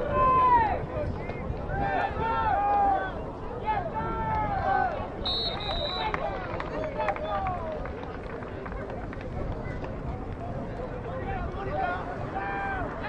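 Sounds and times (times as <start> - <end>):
distant voices shouting: 11.2 - 13.0.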